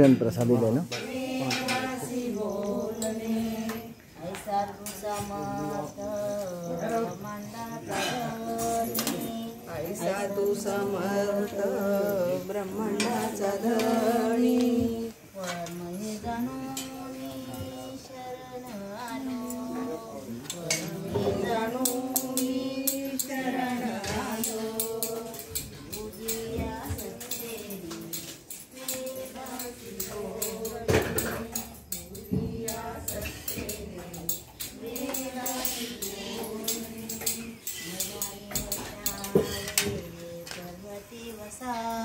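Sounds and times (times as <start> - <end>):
metal pots and utensils clattering: 0.0 - 2.1, 19.8 - 40.6
steel plates and bowls clinking: 0.0 - 3.9, 6.9 - 18.1, 18.7 - 42.0
faint voices: 0.0 - 42.0
group devotional singing: 0.0 - 42.0.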